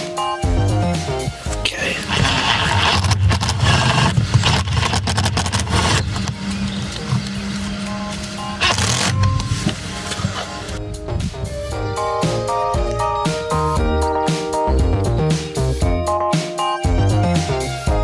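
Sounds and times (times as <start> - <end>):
background music: 0.0 - 3.7, 6.4 - 18.0
impact driver rattling: 2.2 - 6.3.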